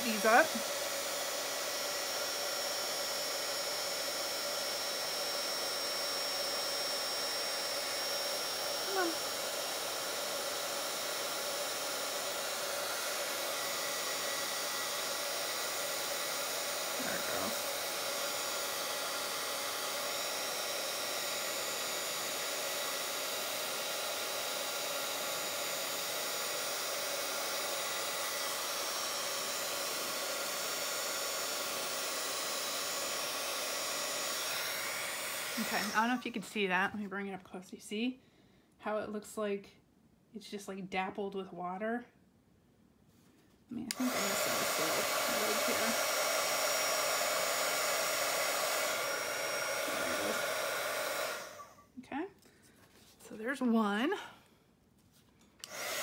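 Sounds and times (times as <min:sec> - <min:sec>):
heat gun blowing: 0:00.0 - 0:36.4, 0:43.8 - 0:51.9, 0:55.6 - 0:56.0.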